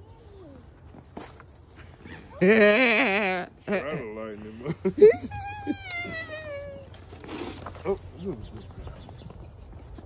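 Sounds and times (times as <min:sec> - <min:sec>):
person yelping: 0:05.0 - 0:06.9.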